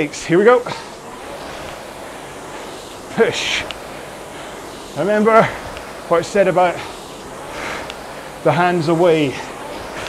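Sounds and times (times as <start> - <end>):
rowing machine fan whooshing: 0.0 - 10.0.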